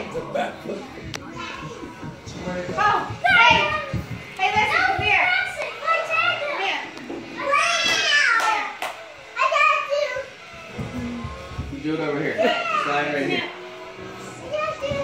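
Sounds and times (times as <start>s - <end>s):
children shouting and squealing: 1.2s - 2.2s, 3.2s - 11.6s, 12.4s - 13.2s, 13.9s - 15.0s.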